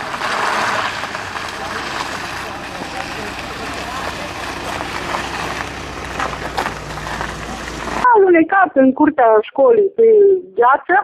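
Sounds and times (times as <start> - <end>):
van engine idling: 0.0 - 8.0.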